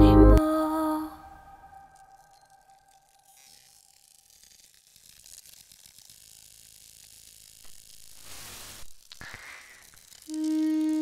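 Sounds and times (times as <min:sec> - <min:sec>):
crackling static noise: 0:00.0 - 0:11.0.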